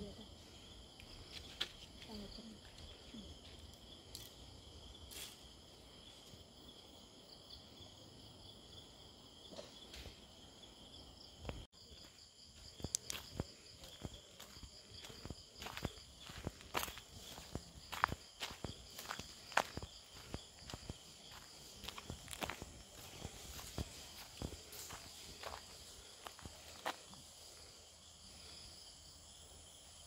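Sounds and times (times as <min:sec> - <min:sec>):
crickets chirping: 0:00.0 - 0:30.0
footsteps crunching on dirt: 0:11.8 - 0:27.7.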